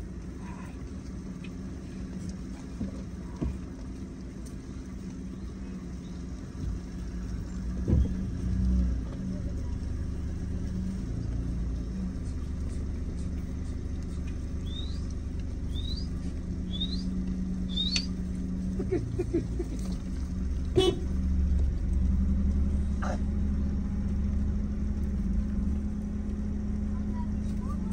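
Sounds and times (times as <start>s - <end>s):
low rumble with wavering hum: 0.0s - 27.9s.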